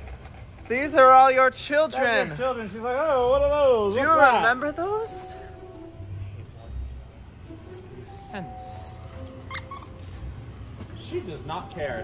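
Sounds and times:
dog whimpering: 0:09.4 - 0:10.1.

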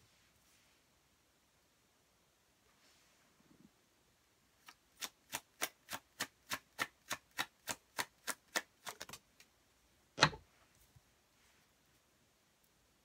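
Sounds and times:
cards being shuffled: 0:08.5 - 0:09.5.

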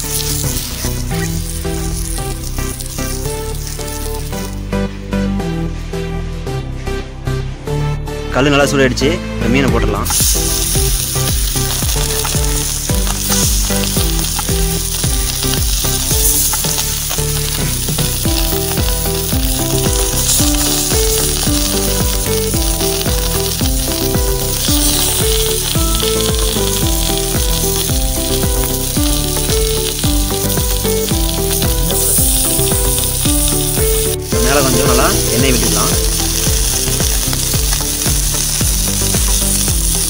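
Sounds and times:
small crackles: 0:00.0 - 0:04.4, 0:10.1 - 0:40.0
fish sizzling in oil: 0:00.0 - 0:04.9, 0:10.0 - 0:40.0.

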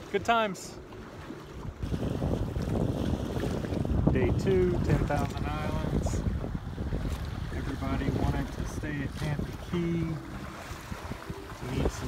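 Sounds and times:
water washing along hull: 0:00.0 - 0:12.0
wind buffeting microphone: 0:01.1 - 0:12.0.

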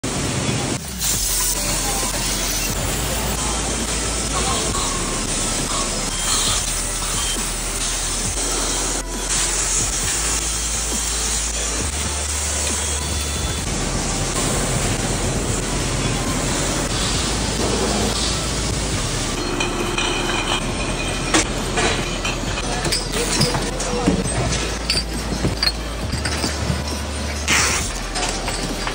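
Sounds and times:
gas burners hissing: 0:00.0 - 0:28.9
machinery running: 0:00.1 - 0:28.9
glass bottles clinking: 0:01.3 - 0:11.9, 0:15.8 - 0:28.9.

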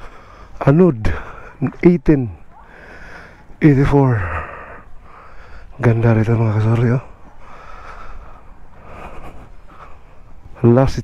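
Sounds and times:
faint breath-like noise: 0:00.0 - 0:10.6.

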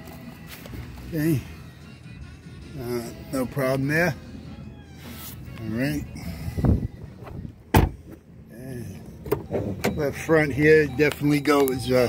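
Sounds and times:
vehicle door slamming: 0:07.2 - 0:08.2.

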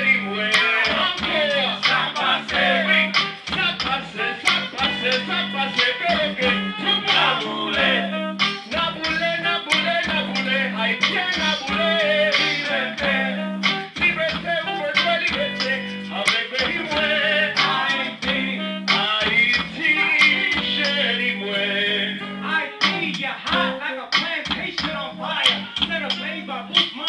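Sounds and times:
live band music: 0:00.0 - 0:27.0
man singing into a microphone: 0:00.0 - 0:27.0.

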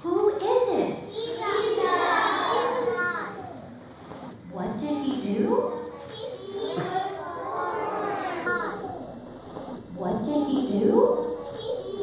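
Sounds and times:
children chattering and calling out: 0:01.0 - 0:03.8, 0:05.6 - 0:09.3, 0:11.1 - 0:12.0.

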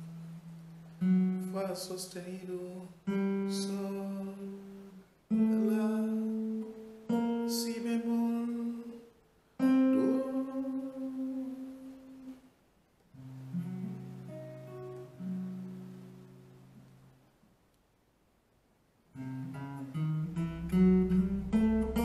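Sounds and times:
guitar plucked notes: 0:00.0 - 0:02.0, 0:03.0 - 0:09.0, 0:09.6 - 0:12.4, 0:13.2 - 0:17.2, 0:19.2 - 0:22.0
low guitar chord ringing: 0:19.2 - 0:22.0.

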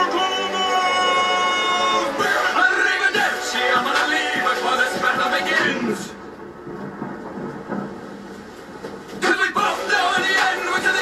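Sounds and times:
man's voice over music: 0:00.0 - 0:06.2.

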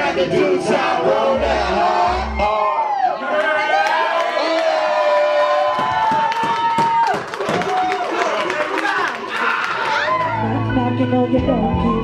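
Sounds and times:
crowd cheering: 0:02.3 - 0:10.7.

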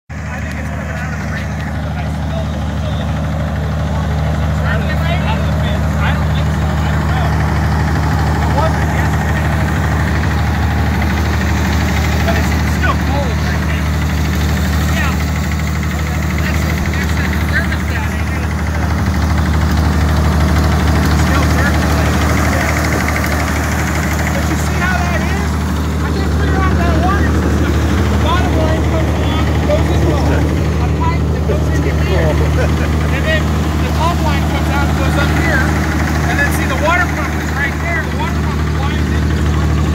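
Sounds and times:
truck engine idling: 0:00.1 - 0:39.9.

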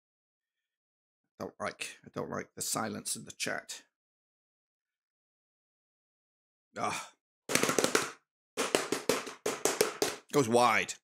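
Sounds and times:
rapid clicking taps: 0:07.5 - 0:10.4.

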